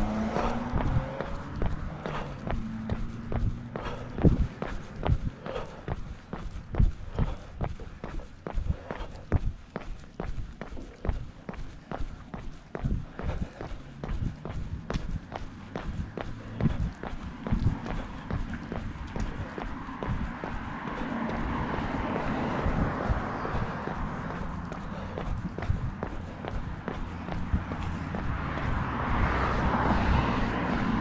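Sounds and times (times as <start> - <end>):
footfalls on concrete: 0.0 - 31.0.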